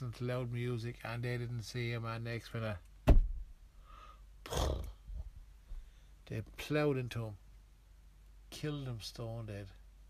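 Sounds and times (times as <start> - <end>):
loud thump: 3.0 - 3.5.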